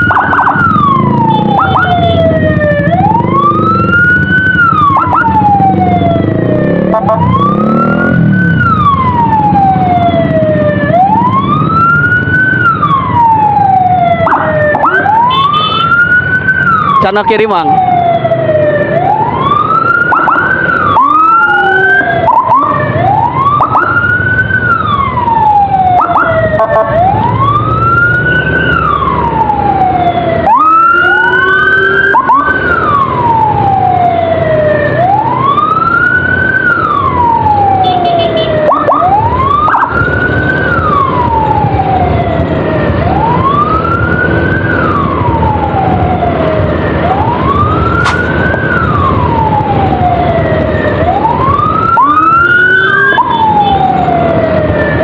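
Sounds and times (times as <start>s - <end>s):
second siren quicker sweeps: 0.0s - 12.1s, 46.9s - 54.3s
engine and traffic noise: 0.0s - 55.0s
siren wailing: 0.0s - 55.0s.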